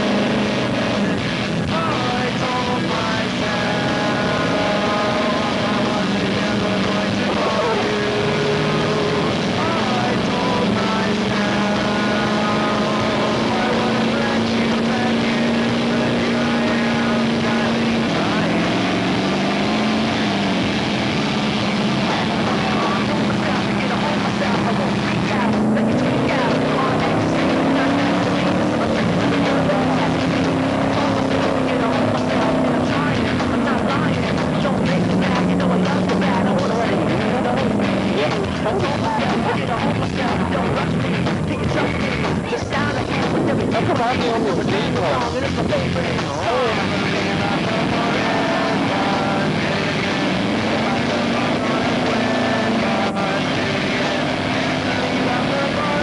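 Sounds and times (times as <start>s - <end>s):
truck engine running under load: 0.0s - 56.0s.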